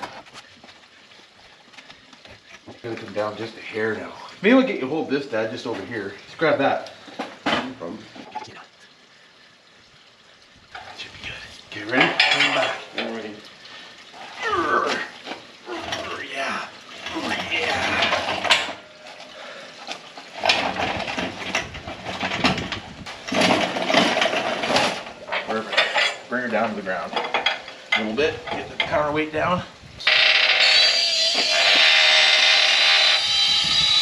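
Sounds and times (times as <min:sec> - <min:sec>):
chains clinking and rattling: 0:20.4 - 0:26.4.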